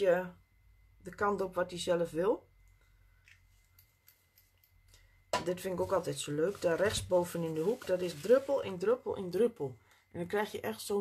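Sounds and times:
soft ticks of small objects handled: 2.6s - 5.1s.

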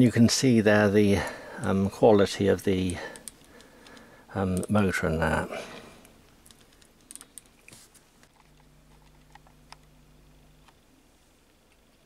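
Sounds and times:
faint low hum: 0.0s - 12.0s
light clicks of small parts: 2.8s - 4.8s, 5.8s - 9.9s.

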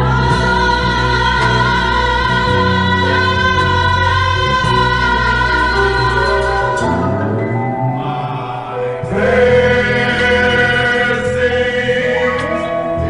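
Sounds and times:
gospel choir singing: 0.0s - 13.0s
sustained low bass notes: 0.0s - 13.0s.

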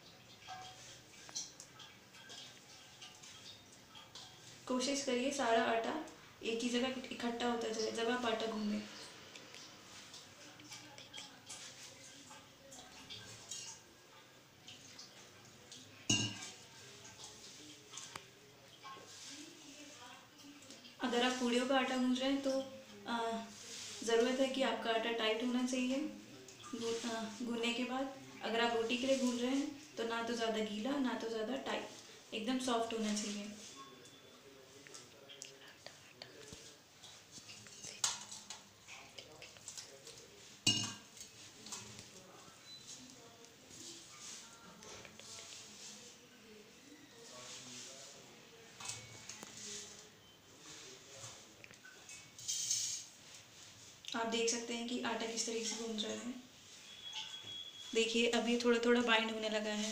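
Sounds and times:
clink on metal plate: 16.1s - 16.6s, 40.7s - 41.0s
metal vessel clanking on plate: 16.1s - 16.6s, 40.7s - 41.8s.

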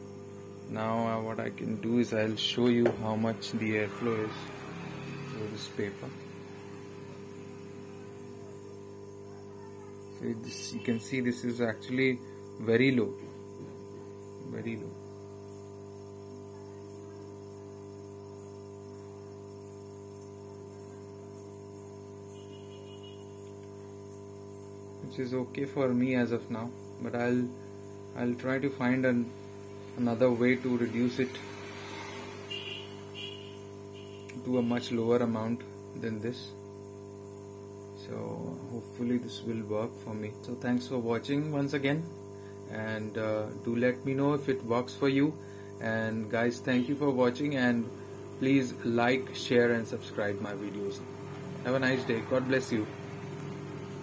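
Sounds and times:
air pump humming: 0.0s - 54.0s.

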